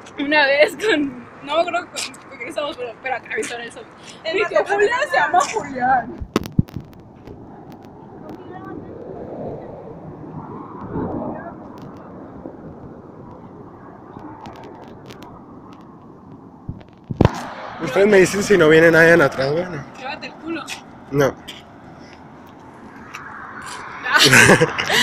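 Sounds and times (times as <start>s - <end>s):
road traffic noise: 0.0s - 25.0s
sharp clicks: 6.2s - 8.0s
vehicle passing: 7.4s - 25.0s.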